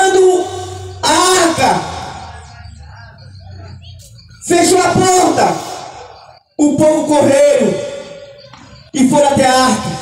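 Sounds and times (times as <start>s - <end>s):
amplified voice: 0.0s - 8.3s, 8.9s - 10.0s
faint background sounds: 0.0s - 10.0s
loudspeaker hum: 0.0s - 10.0s.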